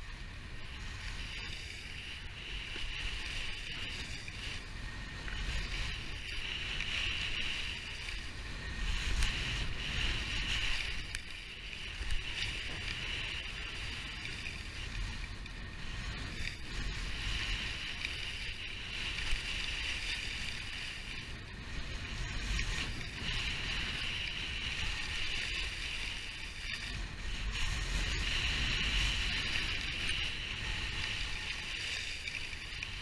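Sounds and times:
skis scraping on snow: 0:00.0 - 0:33.0
wind rumble on microphone: 0:00.0 - 0:33.0.

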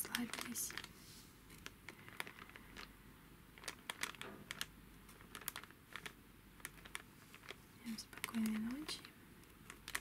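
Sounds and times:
cellophane bag crinkling: 0:00.0 - 0:10.0
plastic gems clicking: 0:03.6 - 0:10.0.

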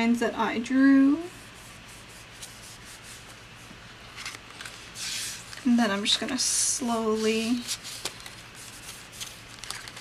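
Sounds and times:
paper brushing on paper: 0:01.2 - 0:06.1.

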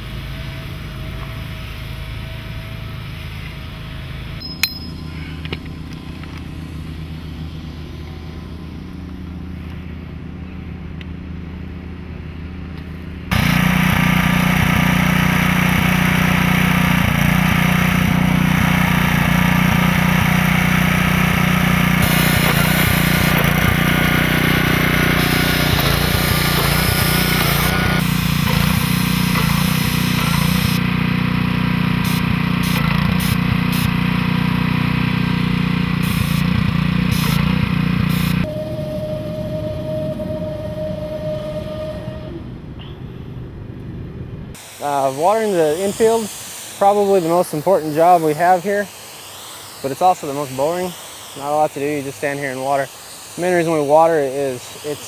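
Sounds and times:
small engine running: 0:00.0 - 0:43.0, 0:44.5 - 0:55.0.

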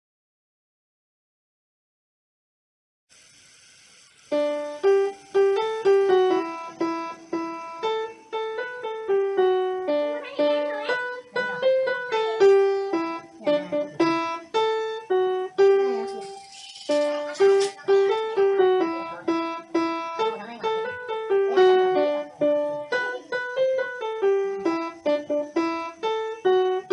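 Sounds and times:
upright piano melody: 0:04.3 - 0:26.9.

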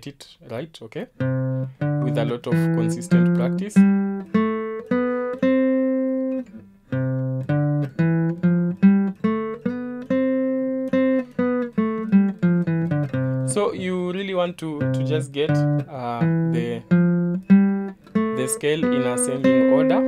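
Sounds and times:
acoustic guitar picking a scale: 0:01.2 - 0:20.0.

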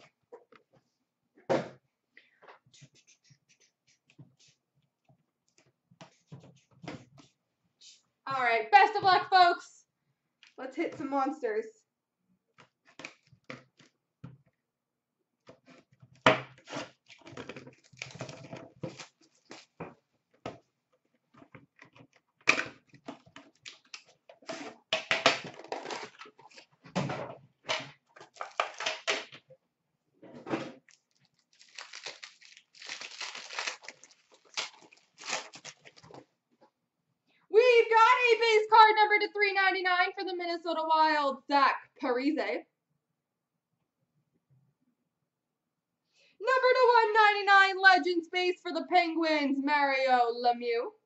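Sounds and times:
plastic wrapping crinkling: 0:17.0 - 0:19.8, 0:28.2 - 0:28.9, 0:30.9 - 0:36.2
cardboard and cards handled: 0:28.1 - 0:29.1, 0:30.8 - 0:36.2.

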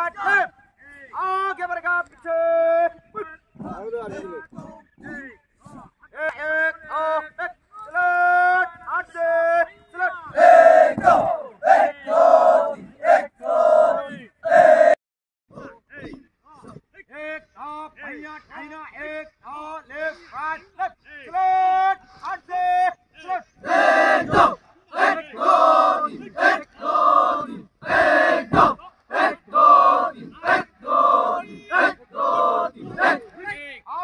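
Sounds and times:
group shouting in unison: 0:10.3 - 0:15.0, 0:23.6 - 0:33.3.

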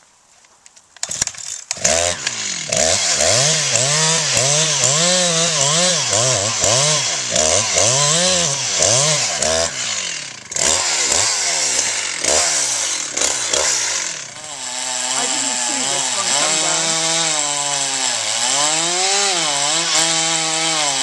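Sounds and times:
chainsaw cutting wood: 0:01.0 - 0:21.0.

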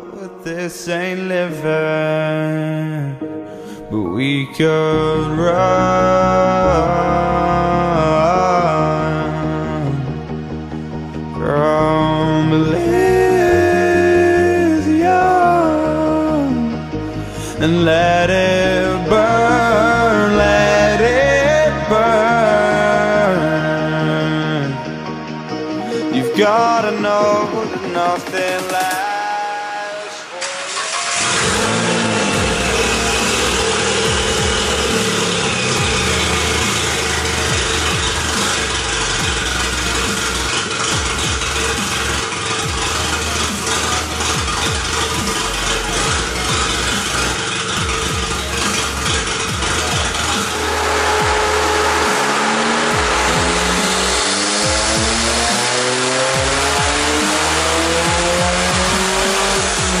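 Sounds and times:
loud raspy car engine revving: 0:04.9 - 1:00.0.

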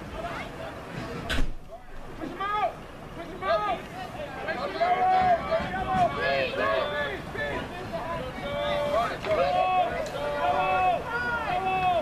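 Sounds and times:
people shouting across a field: 0:01.7 - 0:12.0.

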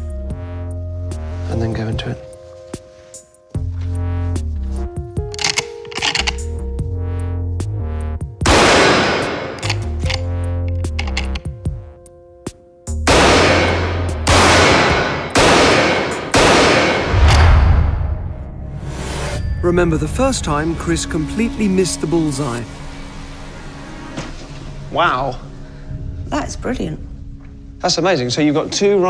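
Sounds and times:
dramatic background music: 0:00.0 - 0:29.0
pistol shots with ringing tail: 0:13.1 - 0:17.1.

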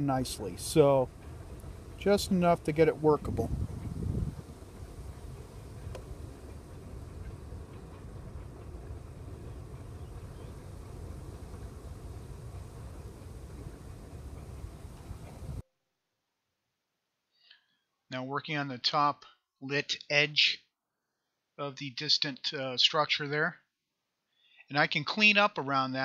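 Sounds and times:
wind buffeting microphone: 0:00.0 - 0:15.6.

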